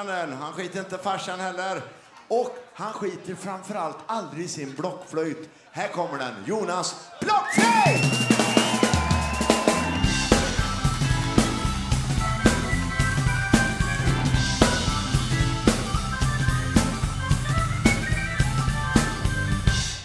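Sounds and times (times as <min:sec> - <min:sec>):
live rock band playing: 0:07.6 - 0:20.0
recorder melody: 0:08.1 - 0:20.0
heavy drum hits: 0:08.4 - 0:19.2.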